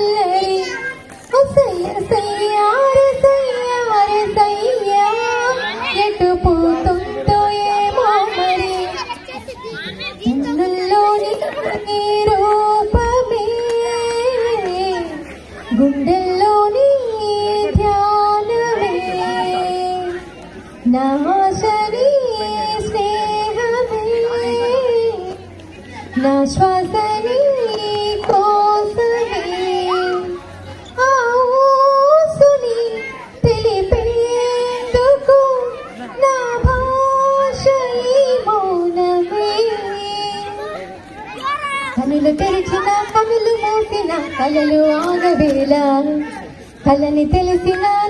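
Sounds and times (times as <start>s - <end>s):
woman singing into microphone: 0.0s - 9.0s, 10.2s - 20.2s, 20.8s - 25.5s, 26.1s - 30.4s, 31.0s - 40.6s, 42.0s - 48.0s
children calling and playing: 0.0s - 48.0s.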